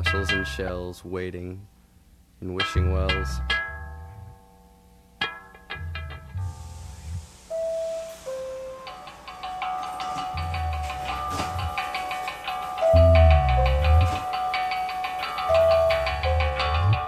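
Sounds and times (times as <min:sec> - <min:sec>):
low bass notes: 0:00.0 - 0:01.0, 0:02.5 - 0:04.6, 0:05.6 - 0:07.5, 0:10.3 - 0:11.9, 0:12.8 - 0:14.3, 0:15.5 - 0:17.0
plucked notes: 0:00.0 - 0:01.5, 0:02.4 - 0:17.0
high bell-like figure: 0:05.9 - 0:17.0.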